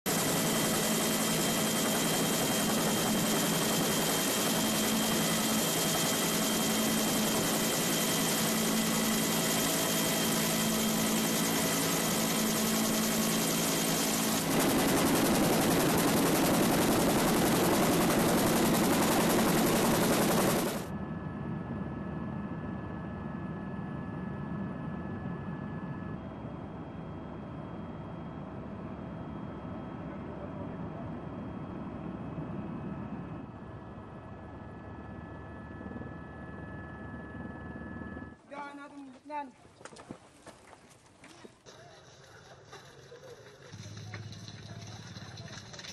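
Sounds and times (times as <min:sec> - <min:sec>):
helicopter engine and rotor drone: 0:00.1 - 0:38.8.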